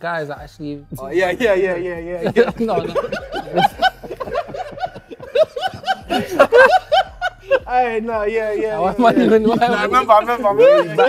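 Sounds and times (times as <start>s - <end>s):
men laughing: 1.2s - 11.0s.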